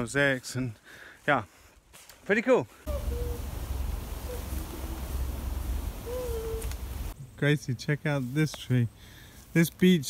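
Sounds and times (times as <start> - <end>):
faint low hooting bird calls: 2.9 - 7.2.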